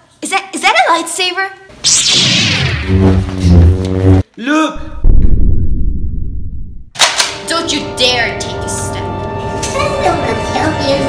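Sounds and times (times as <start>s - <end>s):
swing whoosh: 1.9s - 4.2s.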